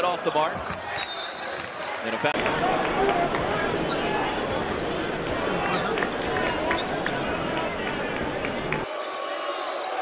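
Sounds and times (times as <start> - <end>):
crowd noise: 0.0 - 10.0
sneaker squeaks: 0.4 - 2.2
ball bouncing on hardwood court: 0.5 - 1.8.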